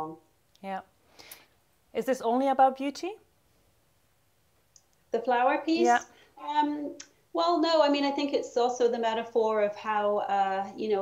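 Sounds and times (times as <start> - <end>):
person speaking: 5.6 - 7.1.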